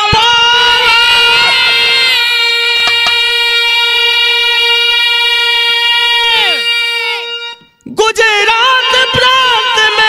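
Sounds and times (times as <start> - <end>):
man singing long high note: 0.0 - 10.0.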